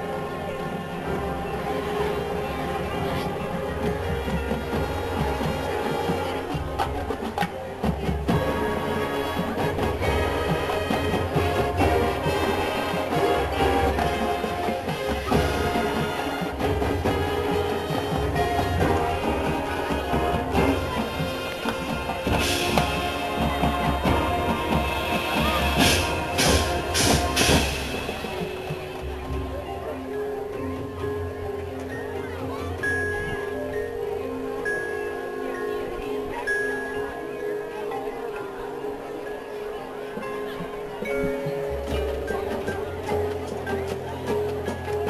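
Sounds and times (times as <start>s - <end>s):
drumline percussion: 0.0s - 45.0s
brass and woodwind chords: 8.3s - 29.9s
percussion crashes: 9.8s - 29.8s.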